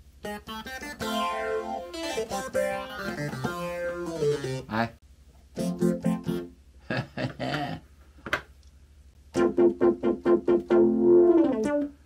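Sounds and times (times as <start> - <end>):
plucked synthesizer notes: 0.2 - 4.7, 5.6 - 6.6, 9.3 - 12.0.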